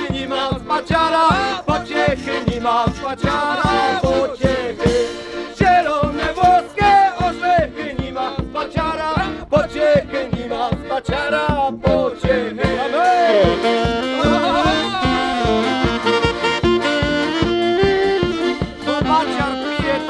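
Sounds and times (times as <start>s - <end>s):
accordion: 0.0s - 20.0s
drum beat: 0.0s - 20.0s
tuba: 0.0s - 20.0s
saxophone: 3.0s - 7.0s, 12.4s - 20.0s.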